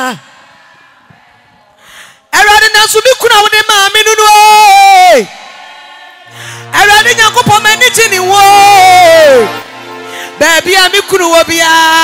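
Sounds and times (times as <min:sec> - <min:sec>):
intake of breath: 0:01.8 - 0:02.3, 0:06.2 - 0:06.7, 0:10.0 - 0:10.4.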